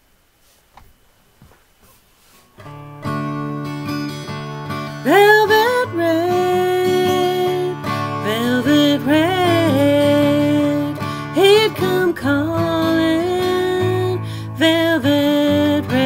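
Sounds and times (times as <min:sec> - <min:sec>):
acoustic guitar: 0:01.8 - 0:16.0
woman singing country song: 0:04.6 - 0:16.0.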